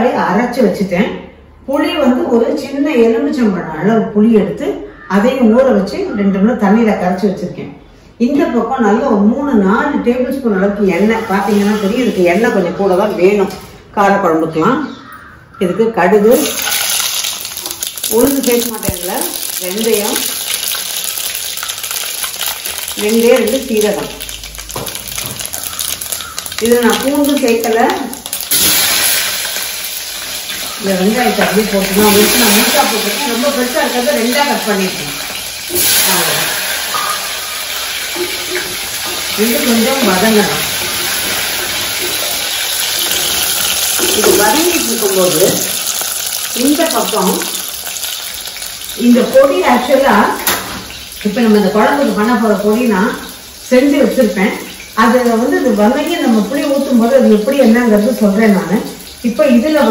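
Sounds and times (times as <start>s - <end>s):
hot oil sizzling and crackling: 10.9s - 12.6s, 16.3s - 59.9s.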